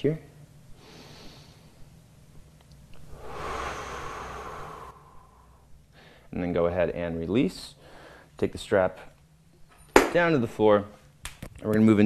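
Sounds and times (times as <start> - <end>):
man breathing: 3.0 - 6.3, 7.8 - 8.4.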